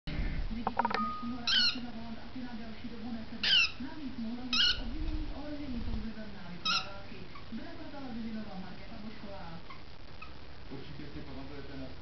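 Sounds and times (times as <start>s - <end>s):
bird chirps: 0.8s - 1.8s.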